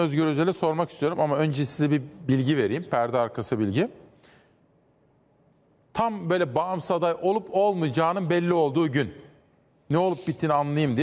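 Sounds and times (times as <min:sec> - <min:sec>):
man speaking: 0:00.0 - 0:04.0, 0:05.9 - 0:09.3, 0:09.9 - 0:11.0.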